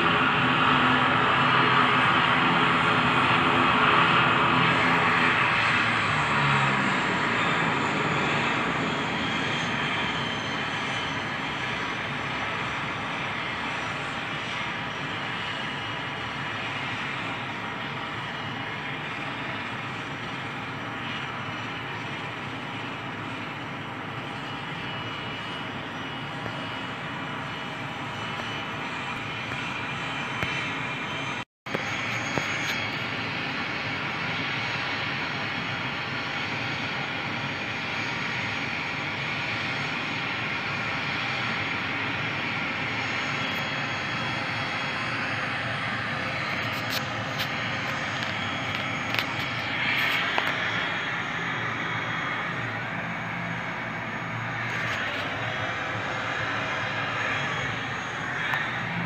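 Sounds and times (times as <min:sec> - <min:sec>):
turboprop engines droning: 0:00.0 - 0:59.0.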